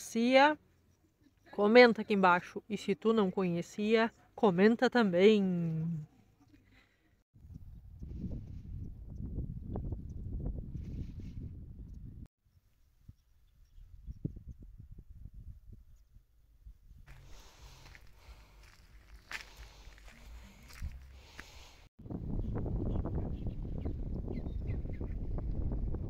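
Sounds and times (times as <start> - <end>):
wind buffeting microphone: 7.4 - 12.3, 13.1 - 17.2, 22.0 - 26.0
flip-flop footsteps on gravel: 17.1 - 21.7.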